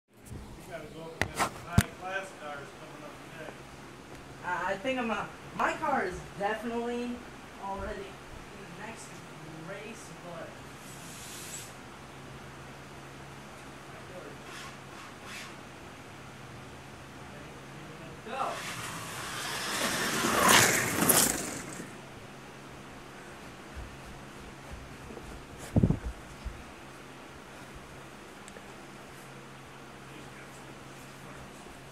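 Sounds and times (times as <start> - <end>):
slot car motors whining: 18.5 - 22.0.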